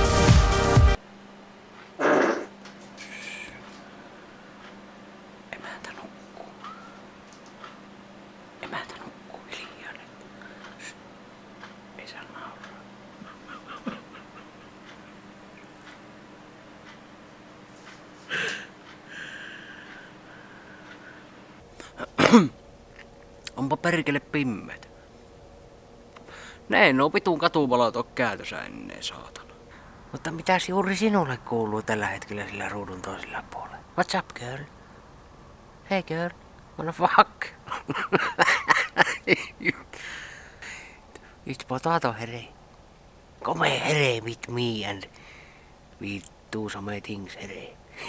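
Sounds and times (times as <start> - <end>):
low electrical hum: 0.0 - 48.0
man clearing throat: 2.0 - 2.5, 18.3 - 18.8, 22.0 - 22.6, 37.7 - 39.9
man speaking: 23.5 - 24.9, 26.7 - 29.5, 30.1 - 34.7, 43.4 - 45.1, 46.0 - 47.8.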